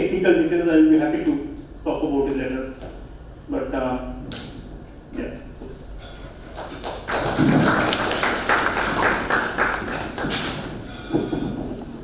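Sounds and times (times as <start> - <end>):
audience applause: 6.5 - 10.9.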